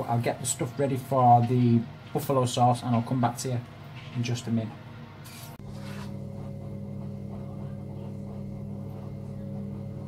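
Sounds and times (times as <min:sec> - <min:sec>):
kitchen appliance electrical hum: 0:00.0 - 0:10.0.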